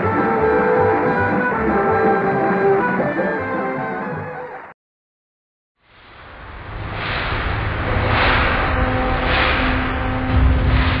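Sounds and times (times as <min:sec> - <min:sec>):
rushing whoosh: 0:05.8 - 0:11.0
deep rumble: 0:05.9 - 0:11.0.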